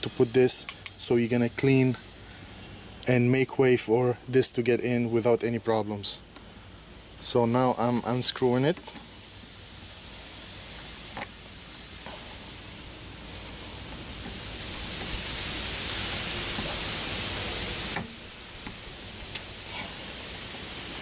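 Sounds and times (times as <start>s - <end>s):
air hissing out of tyre: 1.7s - 3.1s, 6.2s - 7.2s, 8.9s - 21.0s.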